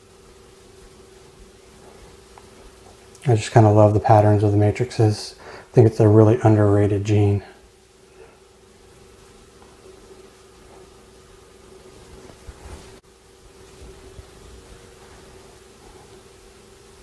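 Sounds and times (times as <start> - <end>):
faint low hum: 0.0 - 17.0
steady hiss: 0.0 - 17.0.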